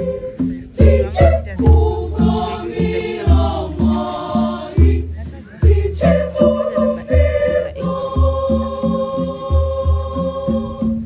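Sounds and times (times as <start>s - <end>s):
choir singing in parts: 0.0s - 11.0s
hand drums beating: 0.0s - 11.0s.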